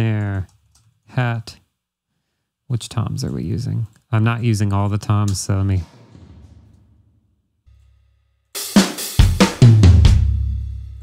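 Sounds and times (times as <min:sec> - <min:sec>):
drum hits with cymbals: 0:05.8 - 0:08.0, 0:08.6 - 0:10.8.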